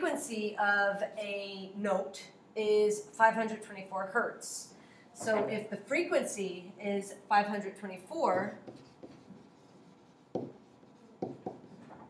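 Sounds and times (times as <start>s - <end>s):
stylus tapping and stroking tablet: 8.4s - 12.0s.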